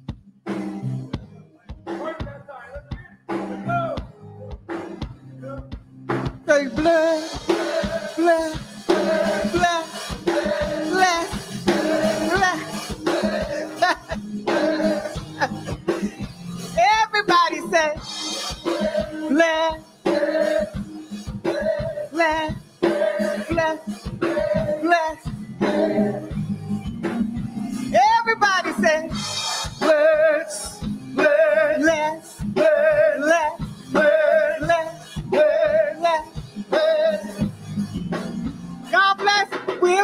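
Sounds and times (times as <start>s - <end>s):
music with low beat: 0.0s - 40.0s
person singing: 6.5s - 20.9s, 21.5s - 26.3s, 27.9s - 37.4s.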